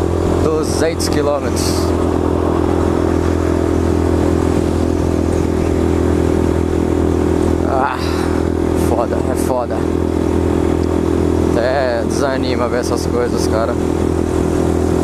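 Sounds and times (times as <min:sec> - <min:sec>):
wind noise on microphone: 0:00.0 - 0:08.9
motorcycle engine droning: 0:00.0 - 0:15.0.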